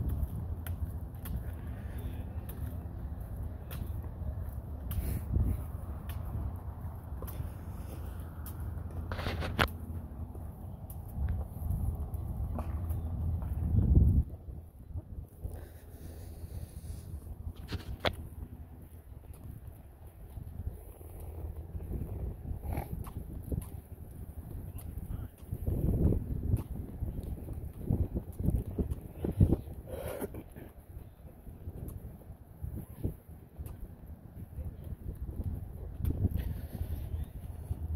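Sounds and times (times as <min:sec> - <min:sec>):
wind buffeting microphone: 0:00.0 - 0:37.9.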